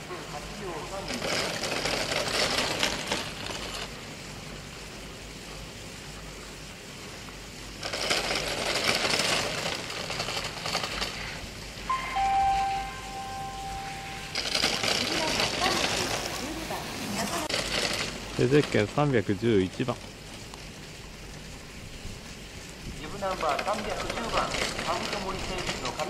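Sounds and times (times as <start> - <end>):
skis scraping on hard snow: 7.8 - 11.4, 14.3 - 20.0, 23.0 - 26.0
two-note tone: 11.9 - 14.6.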